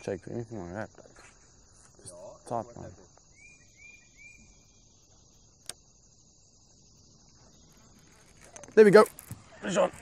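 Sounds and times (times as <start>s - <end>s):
faint high-pitched chirring: 0.0s - 10.0s.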